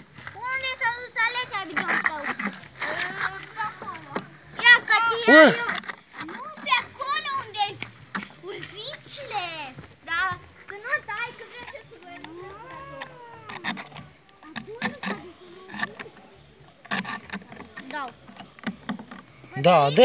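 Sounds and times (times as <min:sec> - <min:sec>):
children talking and calling: 0:00.0 - 0:20.0.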